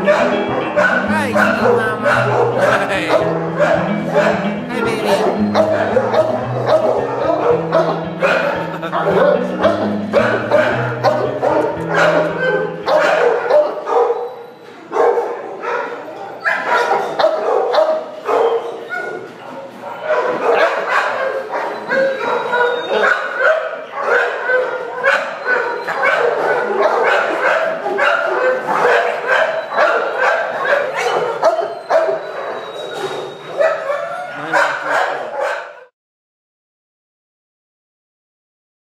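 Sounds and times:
dogs barking: 0.0 - 35.9.

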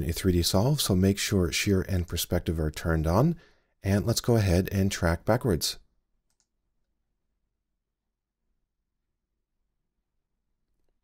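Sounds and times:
computer mouse clicks: 6.2 - 6.6.

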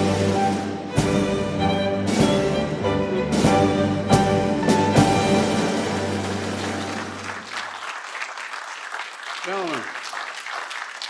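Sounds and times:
applause: 6.0 - 11.0.

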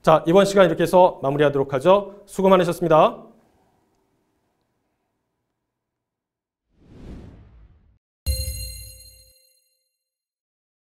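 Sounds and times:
bright bell-like chime: 8.3 - 10.2.

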